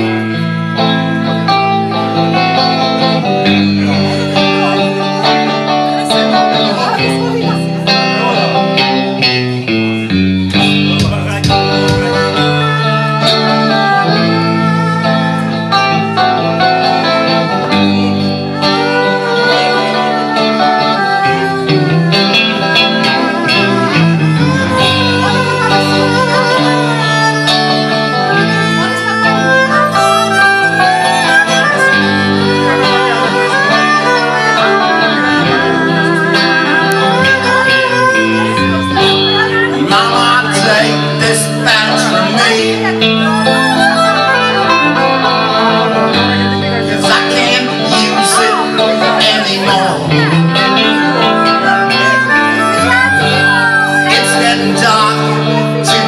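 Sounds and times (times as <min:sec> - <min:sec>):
bass: 0:00.0 - 0:48.5, 0:49.1 - 0:56.0
bowed violin melody: 0:00.0 - 0:56.0
electric guitar: 0:00.0 - 0:56.0
drums: 0:10.5 - 0:12.6.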